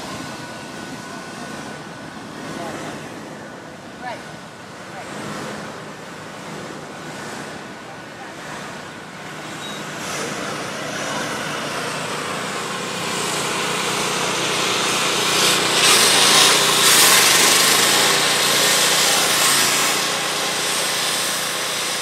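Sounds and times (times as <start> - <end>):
small petrol engine running: 0.0 - 22.0.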